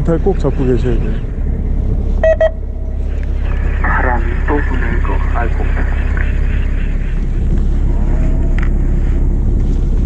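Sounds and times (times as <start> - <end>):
boat engine drone: 0.0 - 10.0.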